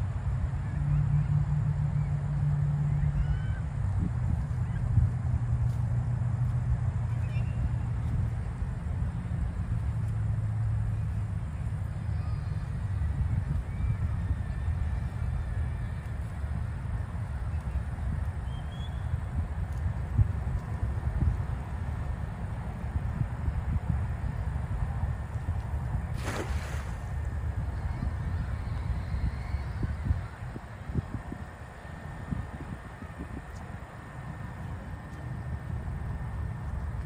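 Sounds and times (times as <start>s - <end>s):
distant road traffic rumble: 0.0s - 37.0s.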